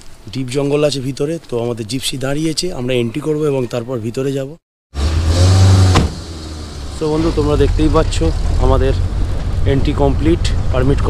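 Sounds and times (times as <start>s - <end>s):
vehicle engine accelerating: 4.9s - 11.0s
sharp knock: 5.8s - 6.3s.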